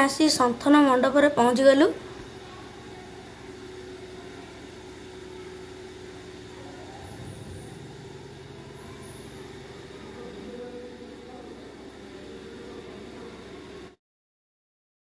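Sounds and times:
pedestal fan running: 0:00.0 - 0:14.0
room hum and hiss: 0:00.0 - 0:14.0.

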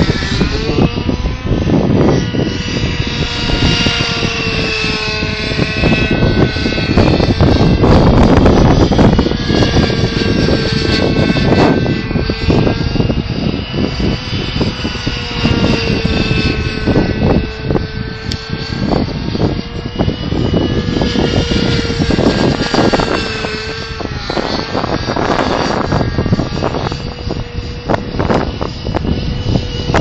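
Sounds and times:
model helicopter engine and rotor whine: 0:00.0 - 0:30.0.

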